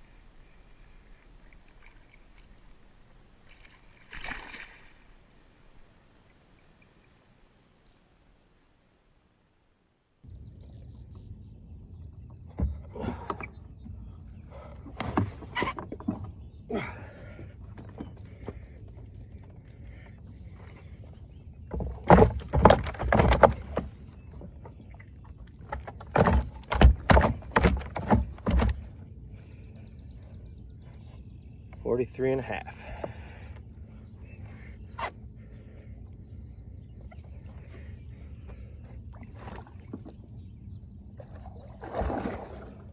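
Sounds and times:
fish thrashing on wooden board: 21.7 - 24.6, 25.6 - 29.0.

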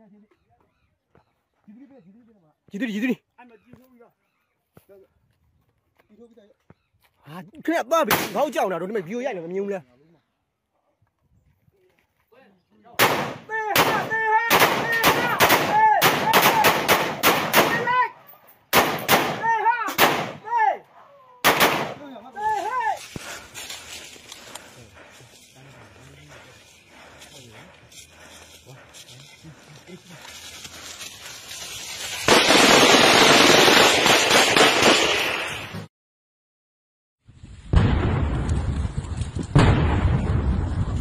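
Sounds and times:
rifle shots with echo: 13.0 - 18.0, 18.7 - 20.4, 21.4 - 22.1
low voices: 22.1 - 31.0
dense crackling noise: 37.4 - 41.0
loud explosion: 37.6 - 41.0.

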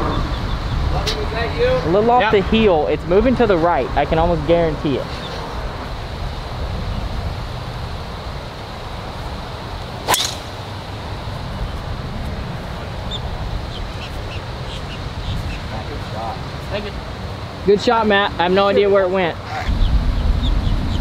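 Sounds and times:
golf driver striking ball: 10.0 - 10.7.

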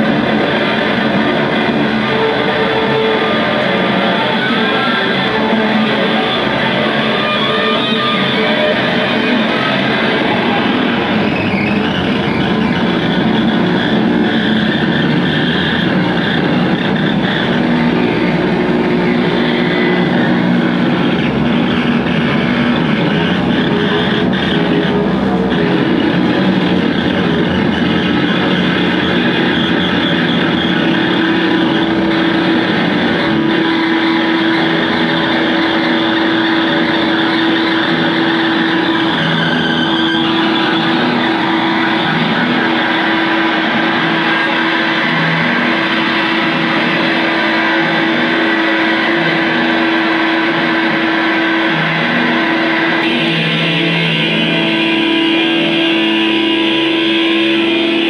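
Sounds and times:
distorted electric guitars: 0.0 - 58.0
droning held tone: 0.0 - 58.0.

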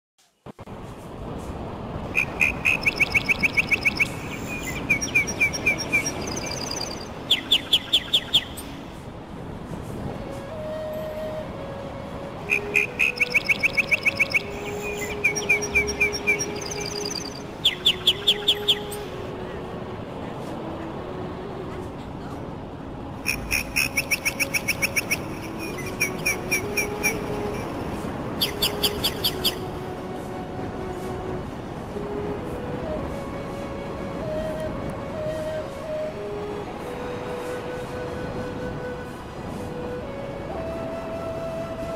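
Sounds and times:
songbird chirping: 2.1 - 9.0, 12.3 - 19.4, 23.2 - 29.8.

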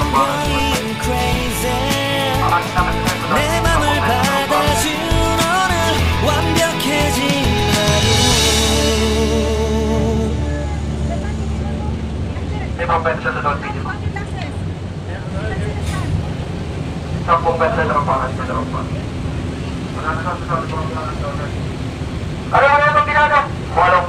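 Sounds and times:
people talking: 0.0 - 16.3, 17.3 - 19.1, 20.0 - 21.6, 22.5 - 24.0
ferry engines droning: 0.0 - 24.0.

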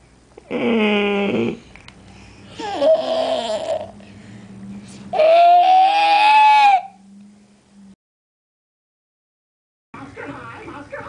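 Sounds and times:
baby squealing: 5.2 - 6.9.

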